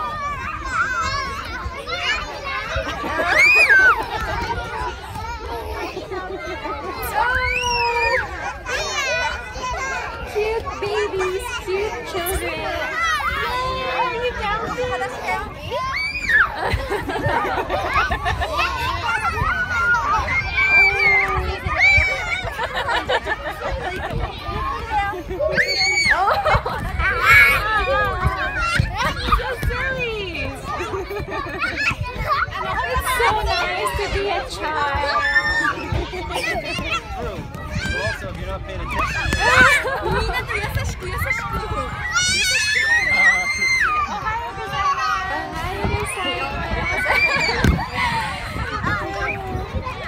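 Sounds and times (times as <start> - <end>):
young children calling and chattering: 0.0 - 50.0.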